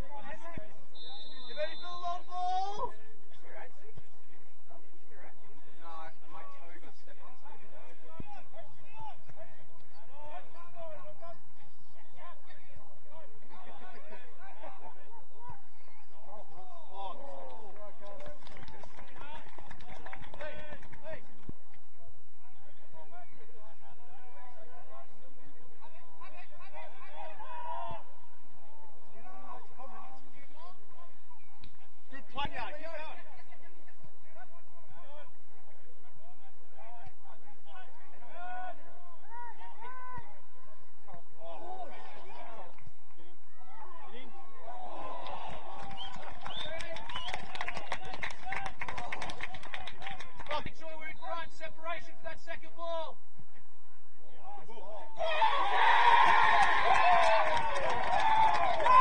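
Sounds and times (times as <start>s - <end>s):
people shouting and calling out: 0.0s - 3.6s, 25.9s - 31.2s, 36.6s - 45.8s, 54.2s - 59.0s
players shouting: 54.4s - 59.0s.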